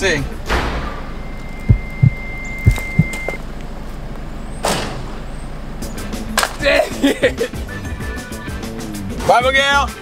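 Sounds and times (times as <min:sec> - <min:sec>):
car engine idling: 0:00.1 - 0:09.2
short low thumps: 0:01.4 - 0:03.4.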